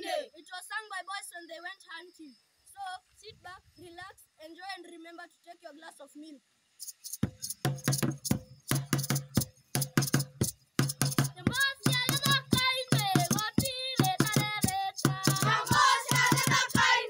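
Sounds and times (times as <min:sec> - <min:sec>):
boys singing: 0:00.0 - 0:00.3, 0:11.4 - 0:17.0
drum beaten with a stick: 0:06.8 - 0:17.0.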